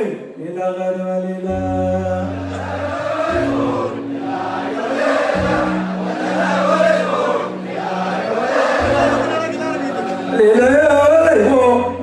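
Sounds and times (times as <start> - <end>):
band holding low notes: 1.6 - 12.0
crowd singing along: 1.8 - 12.0.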